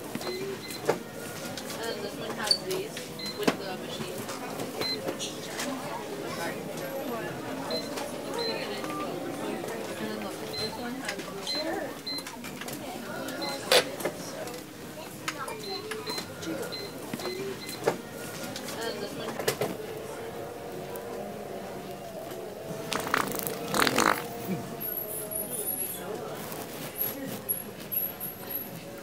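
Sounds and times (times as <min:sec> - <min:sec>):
indistinct voices: 0:00.0 - 0:29.0.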